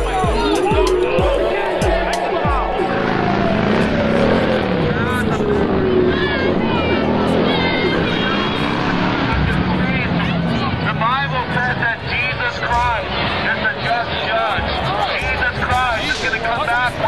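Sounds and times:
crowd shouting: 0.0 - 17.0
loud steady din: 0.0 - 17.0
long falling tone: 0.5 - 10.2.

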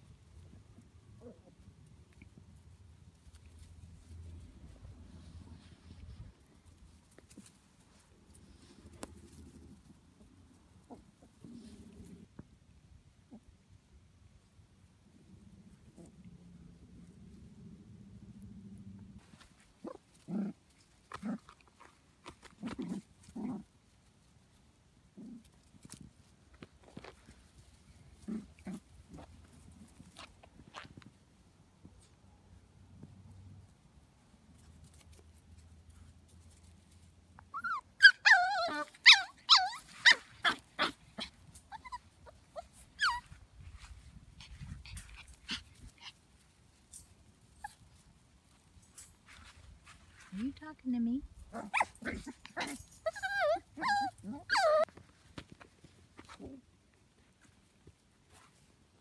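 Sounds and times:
puppy yipping and whining: 37.4 - 43.4, 51.6 - 55.0
puppies growling: 51.4 - 54.9.

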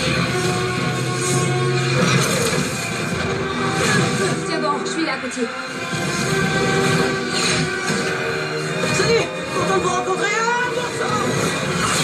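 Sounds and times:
film music: 0.0 - 12.0.

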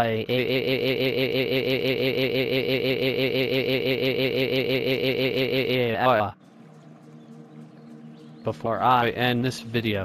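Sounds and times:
synthesized cartoon voice wailing: 0.0 - 6.2.

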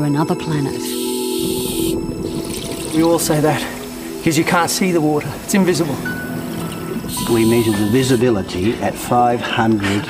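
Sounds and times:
hiss of inhaled air: 0.8 - 2.0
rush of exhaled bubbles: 1.4 - 4.2.

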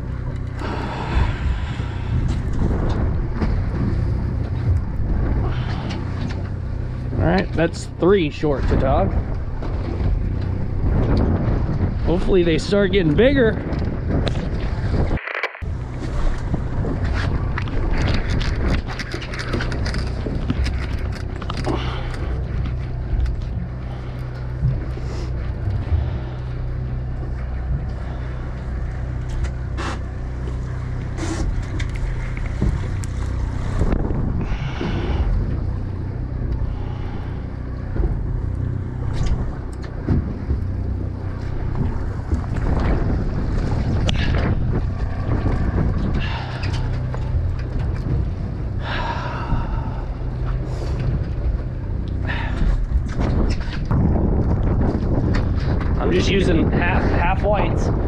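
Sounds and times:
boat engine humming: 0.0 - 58.0
wind buffeting microphone: 0.0 - 58.0.

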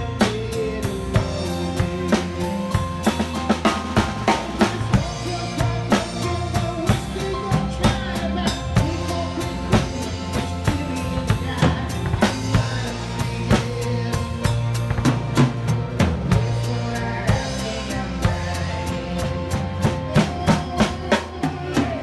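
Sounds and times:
rock drum kit: 0.0 - 22.0
sustained bass and chords: 0.0 - 22.0.

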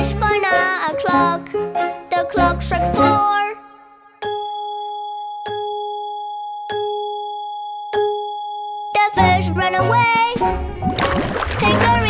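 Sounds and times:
children's song music: 0.0 - 7.3, 7.9 - 12.0
clock bell chiming: 4.2 - 9.8.

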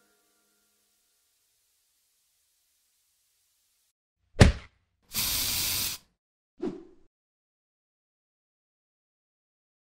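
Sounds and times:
hiss sound effect: 5.1 - 6.1.

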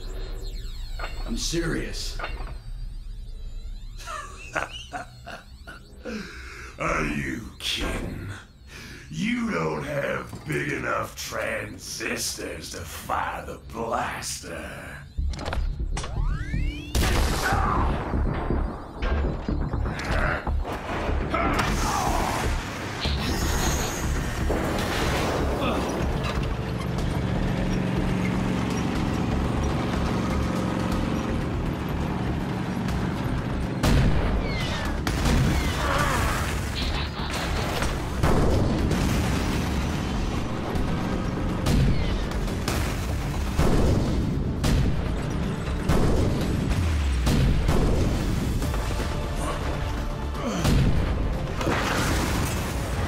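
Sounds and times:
booming blaster shots: 15.1 - 26.3, 33.8 - 48.9
explosions: 15.9 - 26.2, 33.8 - 49.3, 50.6 - 53.0.

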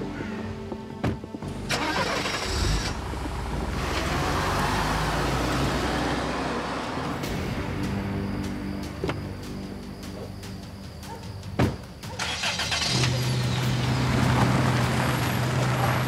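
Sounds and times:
quiet background music: 0.0 - 16.0
car engine starting and driving off: 1.5 - 10.3, 11.7 - 16.0.

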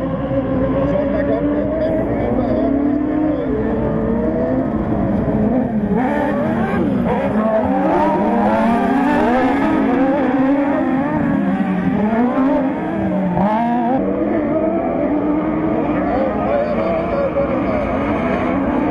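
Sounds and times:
racing car engines revving: 0.0 - 18.9.

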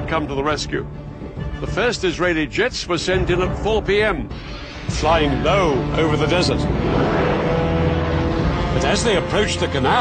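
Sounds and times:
military jet flying low: 6.7 - 8.7.

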